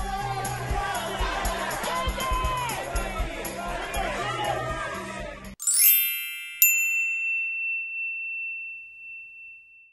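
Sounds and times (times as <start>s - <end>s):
crowd noise: 0.0s - 5.6s.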